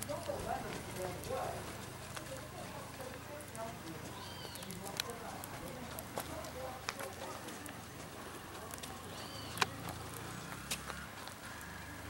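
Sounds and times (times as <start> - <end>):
faint voices: 0.0 - 12.0
footsteps on cobblestones: 0.0 - 12.0.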